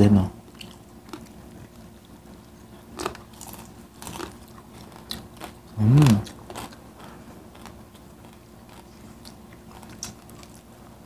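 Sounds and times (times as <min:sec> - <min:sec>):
chewing crispy food: 0:00.4 - 0:11.0.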